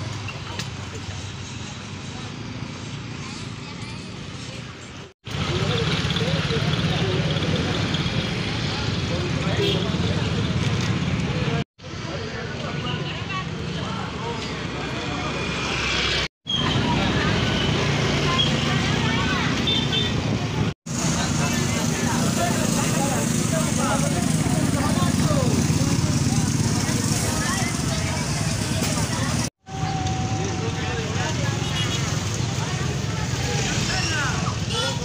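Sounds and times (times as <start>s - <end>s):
motorcycle and vehicle traffic: 0.0s - 35.0s
people chatting and calling: 0.0s - 35.0s.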